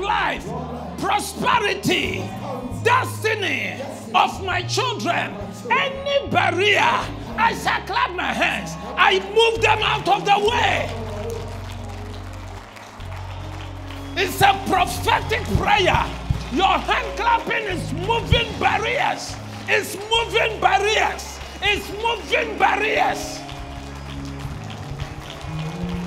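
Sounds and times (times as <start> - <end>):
soft keyboard music: 0.0 - 26.0
congregation clapping: 6.4 - 26.0.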